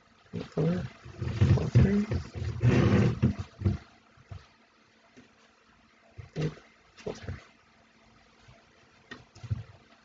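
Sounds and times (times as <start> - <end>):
yarn rubbing and scraping on loom: 0.0 - 4.6.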